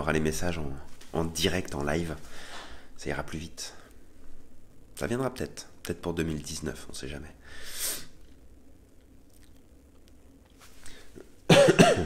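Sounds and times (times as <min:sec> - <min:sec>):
man coughing into hand: 0:11.5 - 0:12.0.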